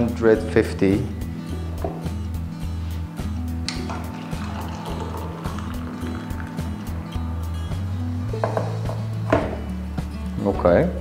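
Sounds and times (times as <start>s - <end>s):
background music with bass line: 0.9s - 11.0s
hot water pouring into glass: 3.7s - 8.3s.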